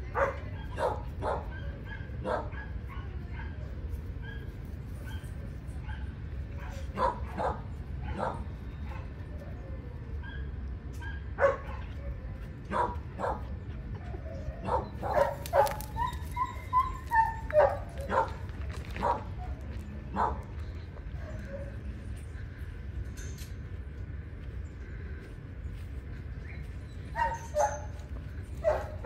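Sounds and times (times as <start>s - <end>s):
dogs barking and yipping: 0.1s - 9.5s, 10.1s - 20.5s, 26.4s - 29.0s
dog whining: 15.8s - 18.2s.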